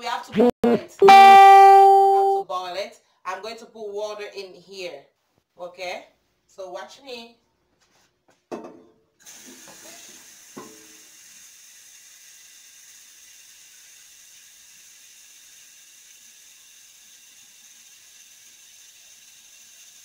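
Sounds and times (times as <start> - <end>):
water running from tap: 9.2 - 20.0.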